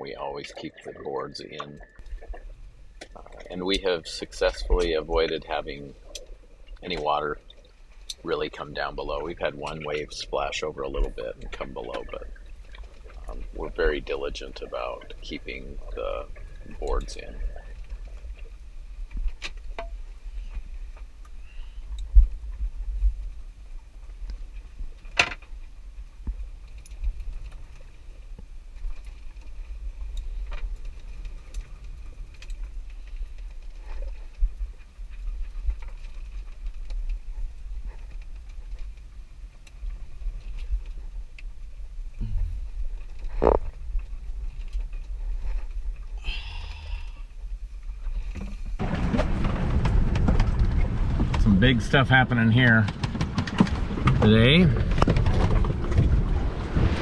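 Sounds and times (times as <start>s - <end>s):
wind buffeting microphone: 40.1s - 57.0s
boat knocking: 48.8s - 57.0s.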